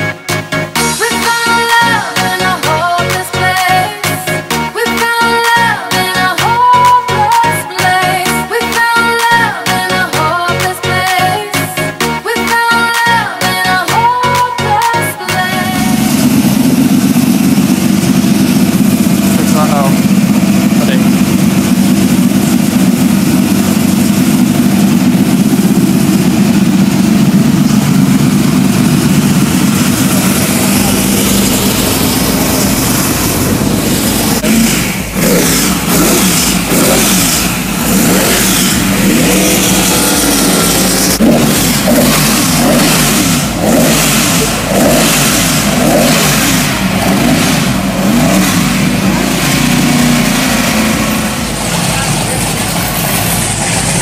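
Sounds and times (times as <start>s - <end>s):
car engine idling and revving: 0.0s - 54.0s.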